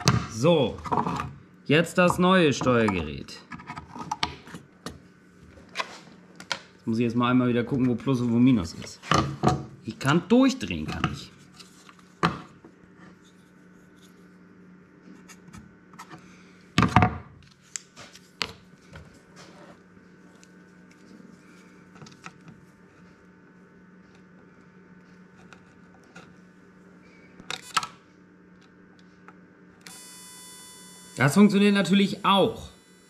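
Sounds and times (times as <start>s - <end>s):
faint steady hum: 0.0s - 33.0s
high-pitched electronic whine: 29.9s - 33.0s.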